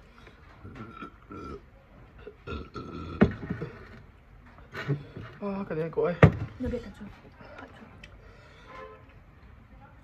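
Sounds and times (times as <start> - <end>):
person burping: 0.6 - 3.9.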